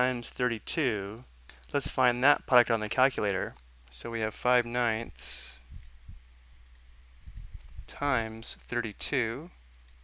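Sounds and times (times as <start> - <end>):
faint computer mouse clicks: 6.6 - 7.5, 9.3 - 10.0.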